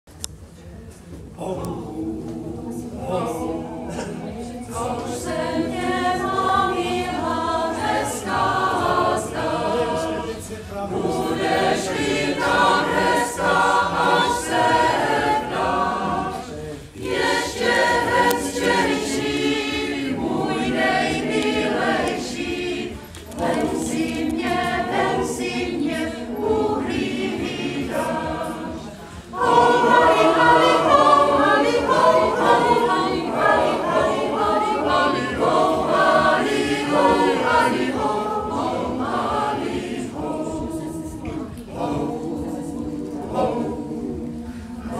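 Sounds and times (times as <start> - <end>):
mixed choir singing: 1.4 - 44.9.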